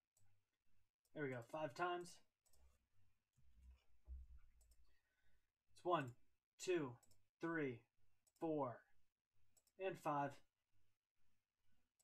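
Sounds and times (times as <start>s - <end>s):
computer mouse clicks: 2.4s - 2.7s, 4.6s - 4.9s, 9.6s - 9.8s.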